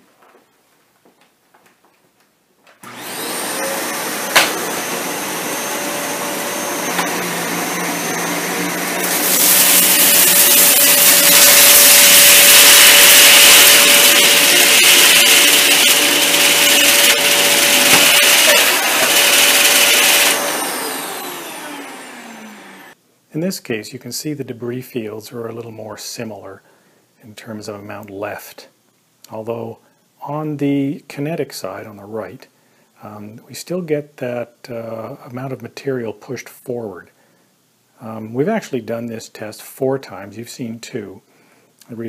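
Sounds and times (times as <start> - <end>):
vacuum cleaner running: 2.8 - 23.0
vacuum motor spinning down: 2.8 - 23.0.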